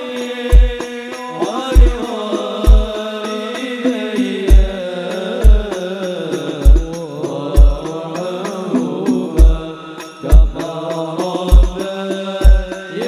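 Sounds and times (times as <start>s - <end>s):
voices chanting a melody: 0.0s - 13.0s.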